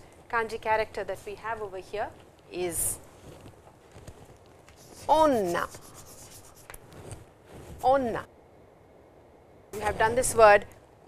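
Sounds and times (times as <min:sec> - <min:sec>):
chalk scratching on chalkboard: 0:04.7 - 0:07.2.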